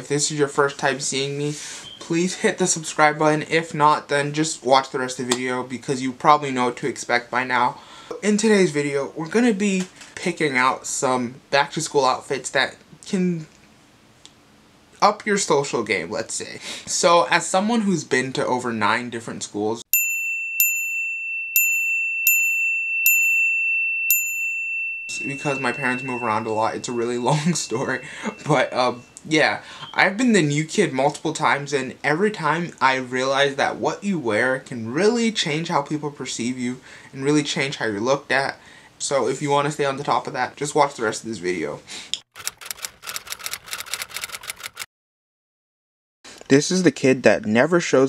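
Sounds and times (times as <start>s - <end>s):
high ringing dings: 19.9s - 30.6s
steady high-pitched tone: 20.4s - 30.6s
rapid keyboard key clicks: 42.4s - 44.9s.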